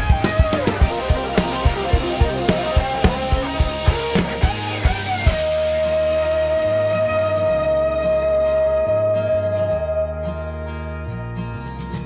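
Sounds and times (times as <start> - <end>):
drum kit hits: 0.0 - 6.8
rock band music: 0.0 - 11.3.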